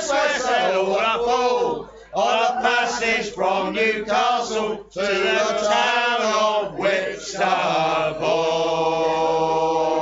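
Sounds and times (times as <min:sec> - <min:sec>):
men's chorus singing: 0:00.0 - 0:10.0.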